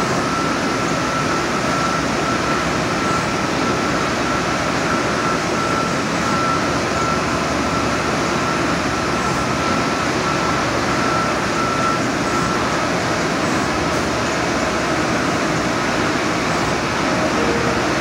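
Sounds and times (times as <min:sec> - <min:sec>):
printer machine rush and hum: 0:00.0 - 0:18.0
pulsing high tone: 0:17.1 - 0:18.0.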